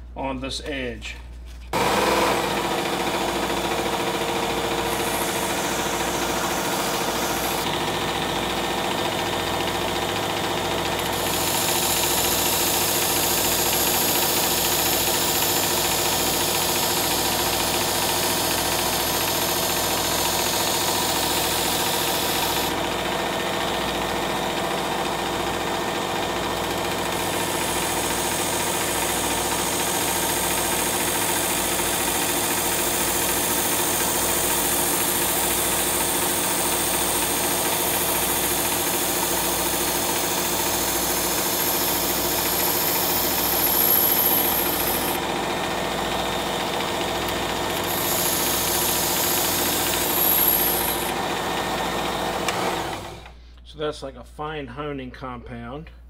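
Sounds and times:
electric belt knife sharpener running: 0:01.7 - 0:53.4.

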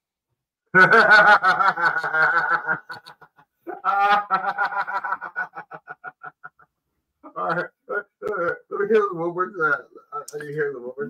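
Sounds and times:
men laughing: 0:00.8 - 0:08.2.

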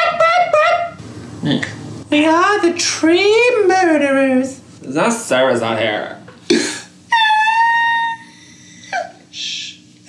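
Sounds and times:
short vocal sound: 0:01.4 - 0:01.8
person singing falsetto note: 0:07.1 - 0:08.4.

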